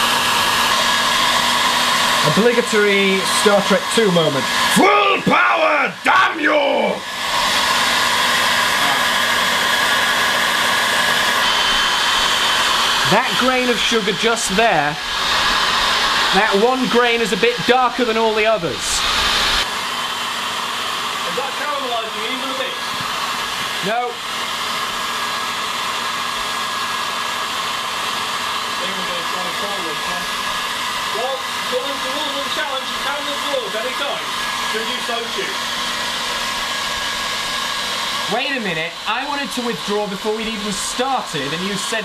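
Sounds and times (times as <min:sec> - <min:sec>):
hairdryer blowing: 0:00.0 - 0:42.0.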